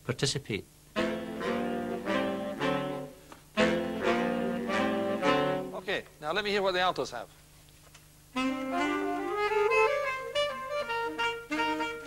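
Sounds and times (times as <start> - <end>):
alto saxophone section playing: 0.9 - 6.0, 8.3 - 12.0.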